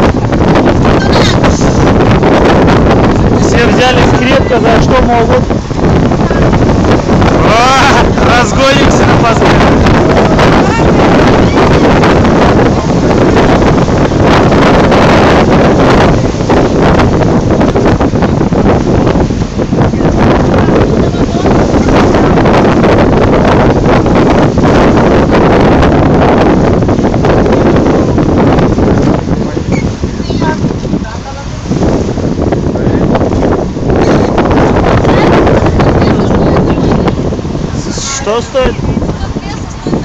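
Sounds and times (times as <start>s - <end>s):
water and hull noise: 0.0s - 40.0s
wind buffeting microphone: 0.0s - 40.0s.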